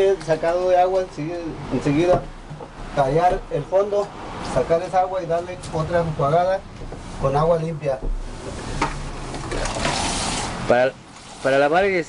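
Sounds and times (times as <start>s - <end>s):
water splashing in a tank: 9.3s - 10.7s.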